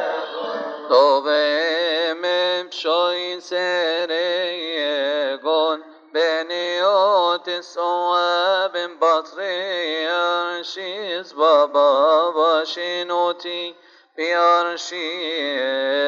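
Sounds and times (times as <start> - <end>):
man chanting a hymn: 0.0 - 16.0.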